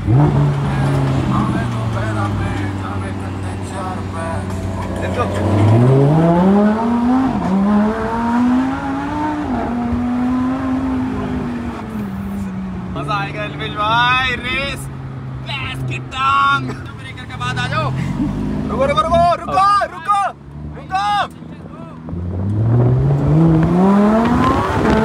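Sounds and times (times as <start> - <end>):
car engine revving: 0.0 - 25.0.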